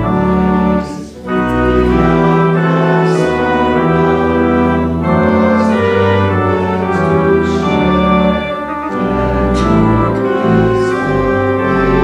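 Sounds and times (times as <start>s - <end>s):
church organ playing a hymn: 0.0s - 12.0s.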